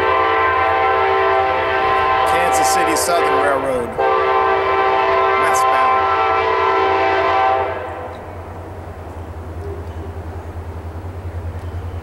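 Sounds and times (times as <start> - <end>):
train horn chord: 0.0 - 8.4
passing train rumble: 0.0 - 12.0.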